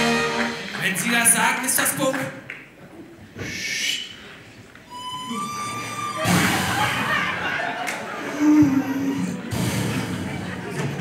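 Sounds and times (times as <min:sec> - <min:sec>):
whistle-like tone: 0:04.9 - 0:06.4.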